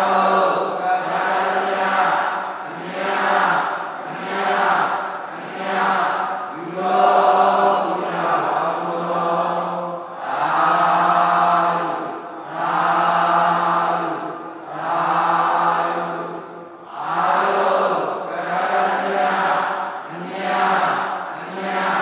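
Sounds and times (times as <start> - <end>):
crowd chanting in unison: 0.0 - 22.0.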